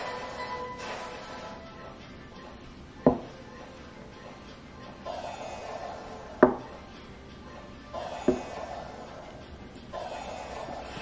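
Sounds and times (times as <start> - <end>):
container knocking on table: 3.1 - 3.3.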